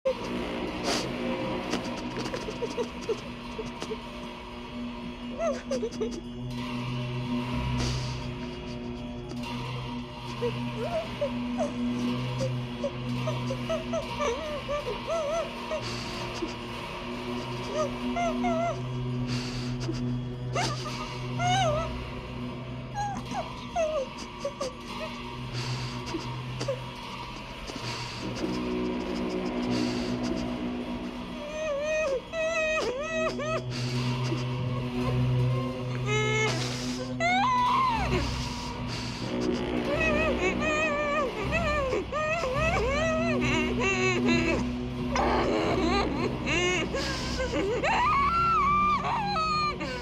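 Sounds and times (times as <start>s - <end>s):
steady hum: 0.1s - 50.0s
woman whimpering and sobbing: 0.1s - 50.0s.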